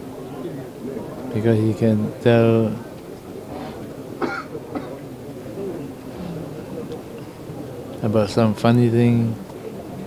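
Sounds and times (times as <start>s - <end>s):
low background noise: 0.0s - 10.0s
person coughing: 4.2s - 5.0s.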